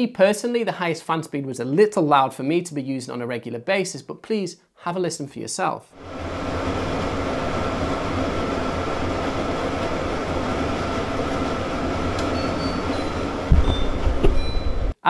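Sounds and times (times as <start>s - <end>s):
air purifier fan running: 6.0s - 15.0s
low thuds and rumbling: 13.0s - 14.9s.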